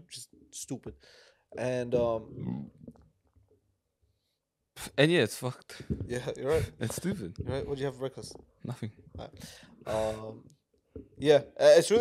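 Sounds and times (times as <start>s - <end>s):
man's voice: 1.6s - 2.7s, 4.9s - 10.4s.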